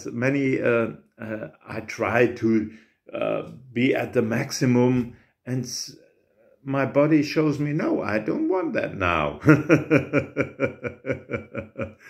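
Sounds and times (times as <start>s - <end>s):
man laughing: 9.4s - 12.0s.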